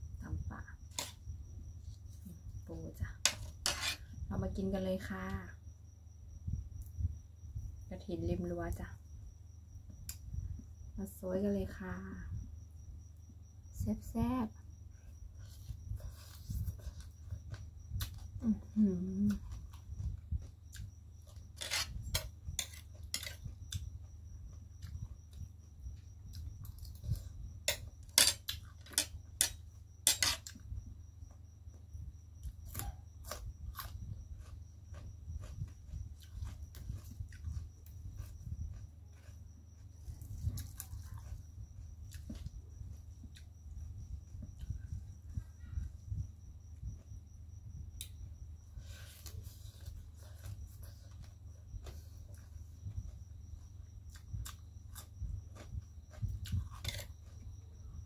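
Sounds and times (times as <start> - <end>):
steady low hum: 0.0 - 58.0
woman speaking: 2.7 - 3.2, 4.3 - 5.5, 7.9 - 8.9, 11.2 - 12.3, 13.8 - 14.5, 18.4 - 19.4
close chewing and crunching: 32.4 - 44.8, 48.8 - 57.9.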